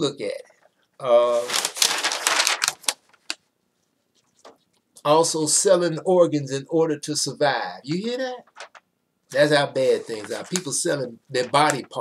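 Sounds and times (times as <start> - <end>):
paper rustling and crackling: 1.3 - 3.4, 4.2 - 4.7, 8.4 - 8.8, 9.4 - 12.0
paper snapping: 1.5 - 3.4, 8.5 - 8.8, 11.4 - 11.9.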